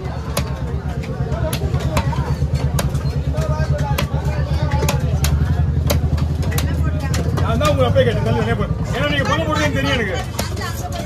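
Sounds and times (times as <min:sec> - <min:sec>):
knife chopping on wooden block: 0:00.2 - 0:07.8.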